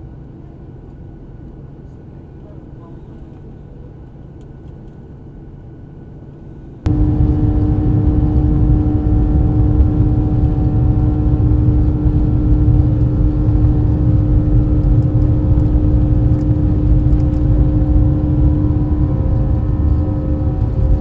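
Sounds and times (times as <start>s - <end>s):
airliner cabin rumble: 6.4s - 21.0s
engine hums: 6.4s - 21.0s.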